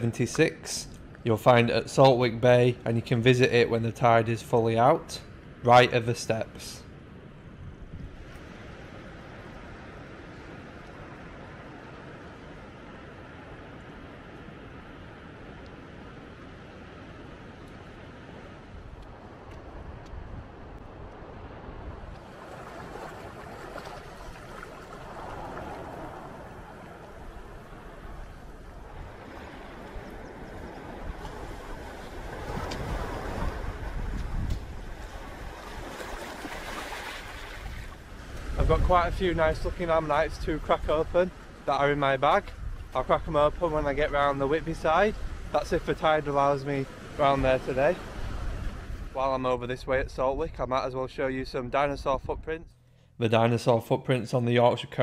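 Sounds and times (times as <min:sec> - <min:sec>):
waves breaking on rocks: 0:22.2 - 0:38.9.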